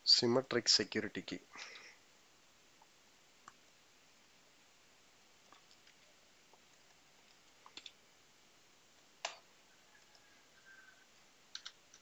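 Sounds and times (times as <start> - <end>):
computer keyboard keystrokes: 7.6 - 8.0, 11.5 - 12.0.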